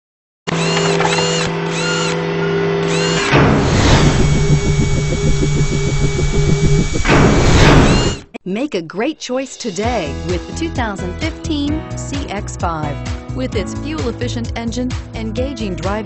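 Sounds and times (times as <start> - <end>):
machine-like whirr: 0.5 - 8.3
whoosh: 3.4 - 8.2.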